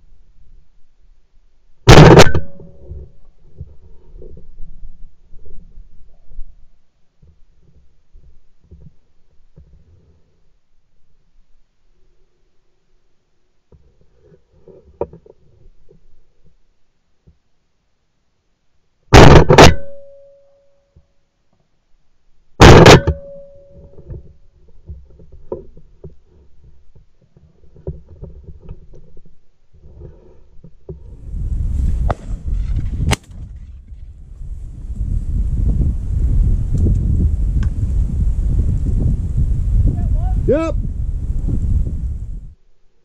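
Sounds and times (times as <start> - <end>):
shotgun shots: 1.9 - 2.6, 19.2 - 20.0, 22.6 - 23.4
wind buffeting microphone: 31.0 - 42.6.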